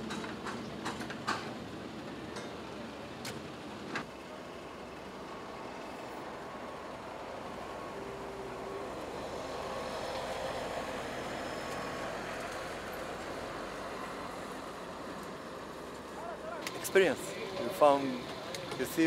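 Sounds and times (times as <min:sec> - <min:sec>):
heavy loader engine rumbling: 0:00.0 - 0:19.0.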